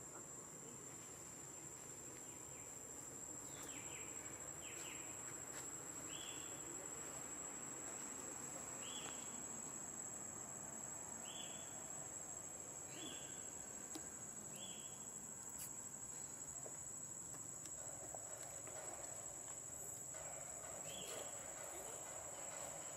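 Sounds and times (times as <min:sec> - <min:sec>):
faint insect drone: 0:00.0 - 0:22.9.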